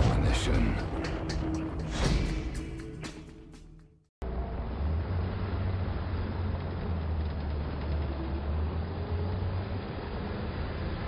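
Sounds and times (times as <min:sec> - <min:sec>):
car engine and road rumble: 0:04.2 - 0:11.0.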